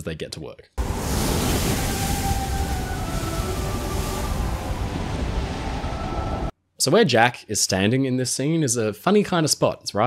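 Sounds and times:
wind and sea rushing: 0.8s - 6.6s.

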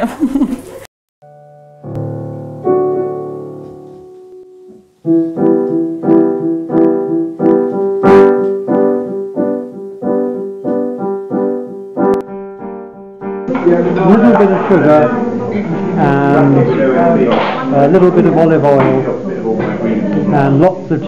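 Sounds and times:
piano chords: 1.2s - 21.0s.

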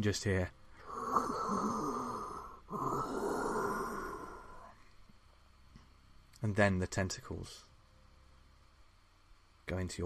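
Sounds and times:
raspy eerie breathing: 0.7s - 5.0s.

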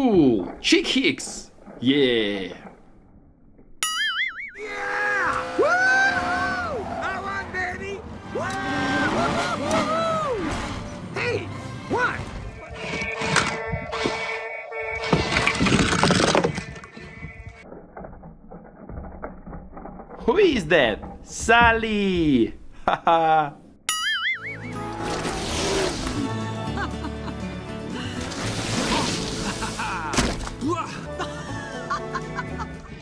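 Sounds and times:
film music: 3.9s - 16.0s, 23.9s - 33.0s
knocks and cracks: 15.1s - 21.9s, 30.1s - 30.7s.

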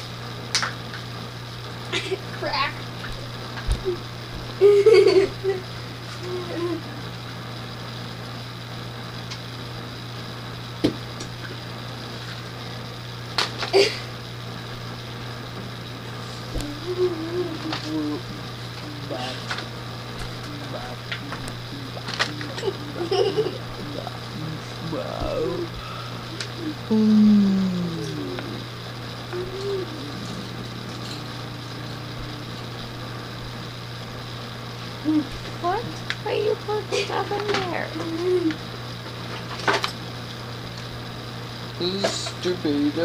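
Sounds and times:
steady low hum: 0.0s - 43.0s
murmurs and laughs: 4.6s - 5.6s, 22.4s - 24.0s.

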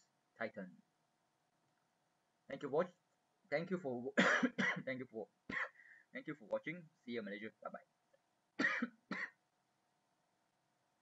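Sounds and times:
man coughing: 4.2s - 4.9s, 5.5s - 5.8s, 8.6s - 9.4s.

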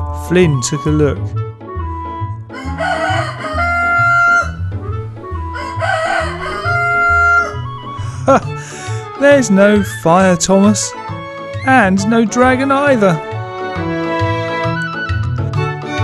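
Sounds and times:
background music with pulsing bass: 0.0s - 16.0s
rooster crowing: 2.5s - 8.0s.

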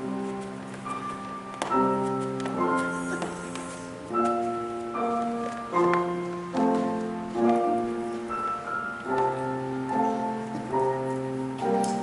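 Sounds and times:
slow keyboard chords: 0.0s - 12.0s.

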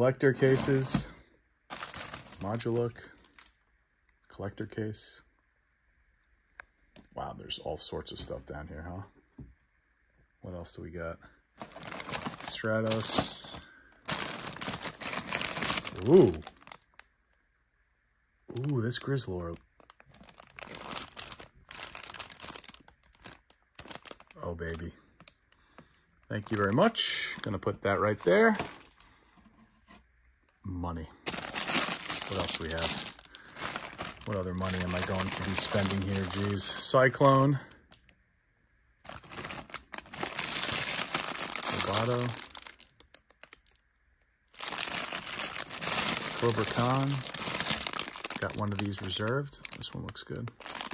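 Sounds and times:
plastic bag crinkling: 0.3s - 1.1s, 1.7s - 3.6s, 11.6s - 17.0s, 18.5s - 29.1s, 31.3s - 38.1s, 39.0s - 43.8s, 44.5s - 50.9s.

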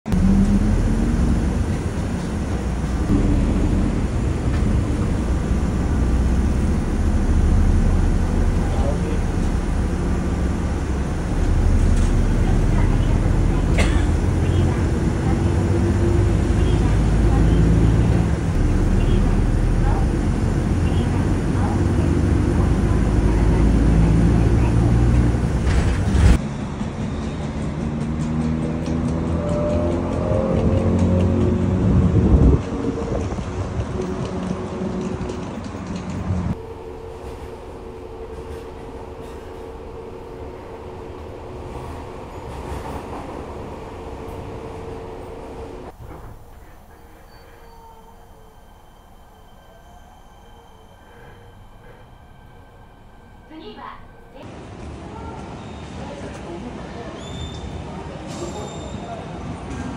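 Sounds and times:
low vehicle rumble: 0.1s - 54.6s.

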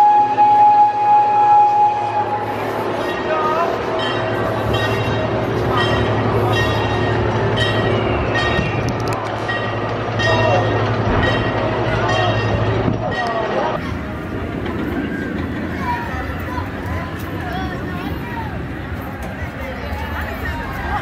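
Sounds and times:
crowd chatter: 0.0s - 21.0s
ride machinery humming: 0.0s - 21.0s.

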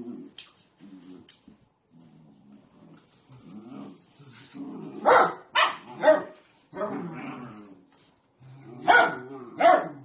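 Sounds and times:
dog growling: 0.0s - 5.1s, 6.8s - 10.0s
dogs barking: 5.0s - 6.4s, 8.8s - 10.0s.

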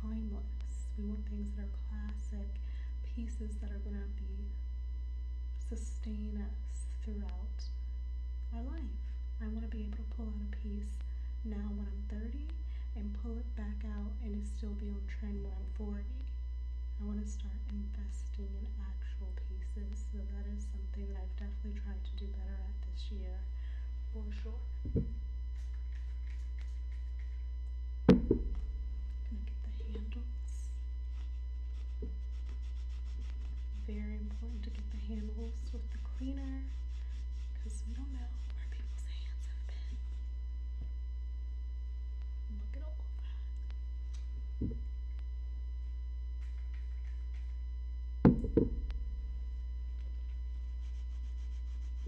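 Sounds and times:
electrical hum: 0.0s - 52.0s
knocks on wooden table: 28.1s - 28.6s, 48.3s - 48.8s.

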